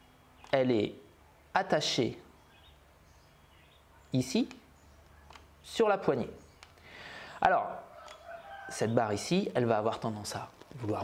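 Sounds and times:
man speaking: 0.5 - 2.3, 4.1 - 4.6, 5.7 - 6.4, 7.4 - 7.9, 8.7 - 11.0.

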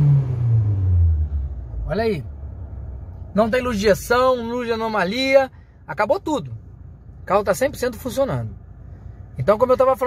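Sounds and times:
car engine revving down to idle: 0.0 - 2.8.

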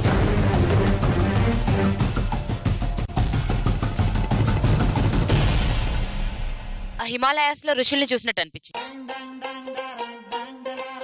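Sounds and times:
bass-heavy promo soundtrack: 0.0 - 7.1.

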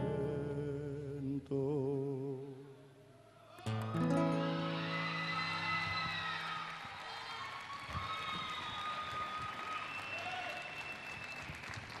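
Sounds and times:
shouts and whistles: 3.4 - 11.7
audience applauding and cheering: 3.6 - 12.0.

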